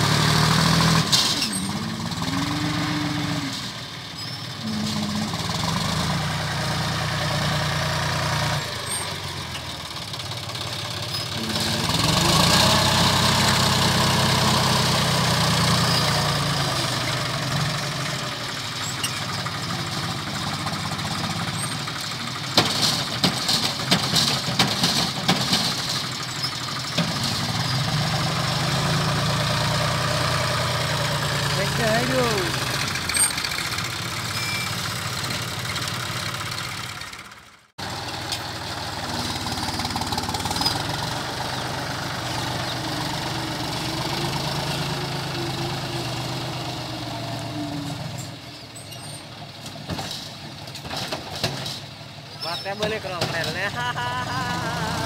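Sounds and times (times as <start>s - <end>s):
diesel tractor engine: 0.0s - 55.0s
sharp clattering knocks: 22.5s - 26.1s.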